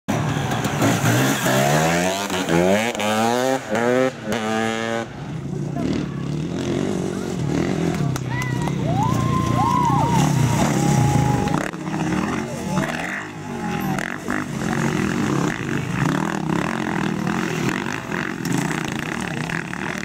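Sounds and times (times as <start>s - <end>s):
motorcycle engine accelerating: 0.1s - 20.0s.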